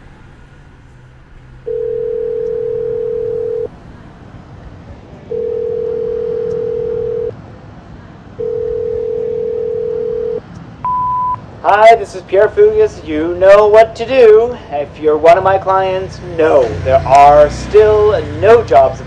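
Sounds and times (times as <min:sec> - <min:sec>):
phone ringback tone: 0:01.7 - 0:03.7, 0:05.3 - 0:07.3, 0:08.4 - 0:11.4.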